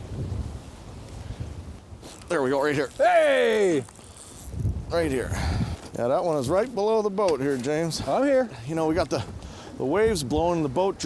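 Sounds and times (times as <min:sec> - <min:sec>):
wind rumbling on microphone: 0:00.0 - 0:06.8, 0:08.8 - 0:11.0
wind-blown water washing: 0:00.0 - 0:11.0.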